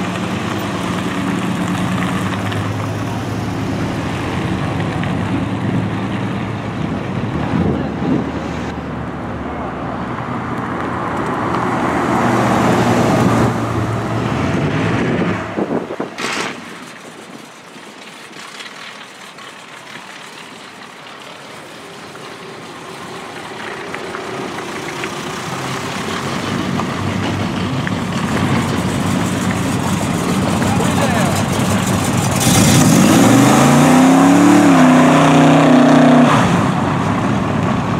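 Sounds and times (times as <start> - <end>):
cars driving past: 0.0 - 37.9
car engine revving: 23.0 - 37.9.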